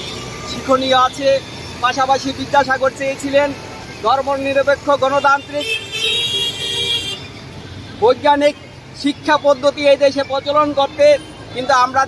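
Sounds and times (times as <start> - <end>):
traffic rumble: 0.0 - 12.0
vehicle horn: 5.6 - 7.2.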